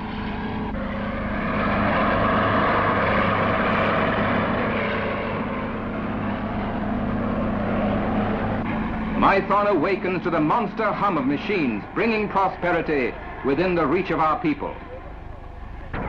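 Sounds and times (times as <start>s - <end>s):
heavy machinery engine drone: 0.0s - 16.0s.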